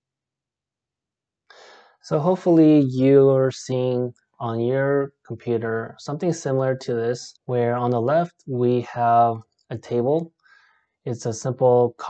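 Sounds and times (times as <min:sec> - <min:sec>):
man breathing in: 0:01.5 - 0:02.0, 0:10.4 - 0:11.0
man speaking: 0:02.0 - 0:10.3, 0:11.1 - 0:12.0.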